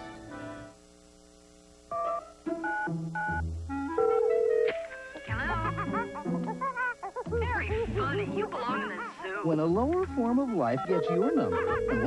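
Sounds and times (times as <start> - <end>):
background music: 0.0 - 0.8, 2.0 - 12.0.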